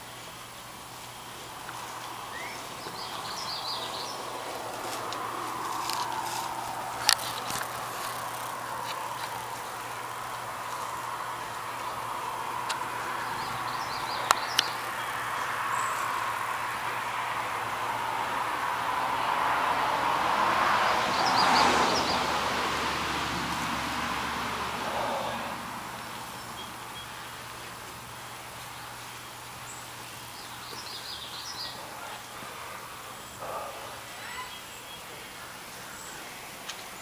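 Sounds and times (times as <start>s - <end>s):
vehicle passing: 1.4s - 28.4s.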